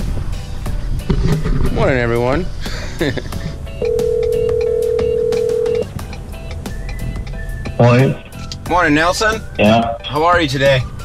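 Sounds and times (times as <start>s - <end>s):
faint background music: 0.0s - 11.0s
telephone ringback tone: 3.8s - 5.8s.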